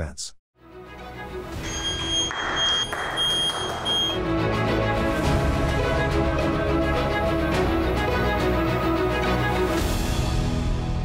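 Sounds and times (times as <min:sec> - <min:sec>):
high electronic buzzer tone: 0:01.6 - 0:04.2
applause: 0:01.8 - 0:04.2.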